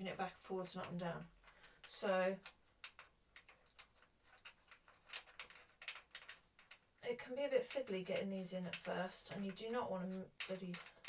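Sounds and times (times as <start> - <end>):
small metal parts clicking: 0.6 - 7.0, 7.6 - 11.0.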